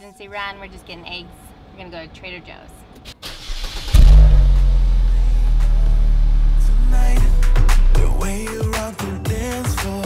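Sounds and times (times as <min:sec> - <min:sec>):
car engine starting and idling: 0:01.4 - 0:08.6.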